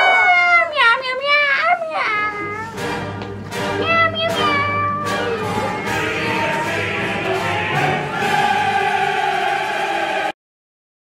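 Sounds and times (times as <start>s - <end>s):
music playing: 1.9s - 10.4s.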